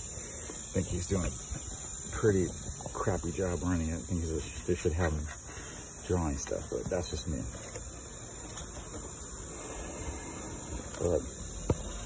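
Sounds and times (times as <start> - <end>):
insect drone: 0.0 - 12.0
outdoor background hiss: 0.0 - 12.0.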